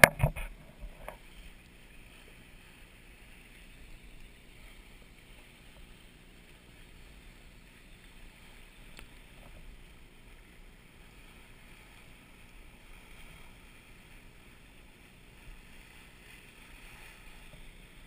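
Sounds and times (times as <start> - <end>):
wind and water rushing: 0.0 - 18.0.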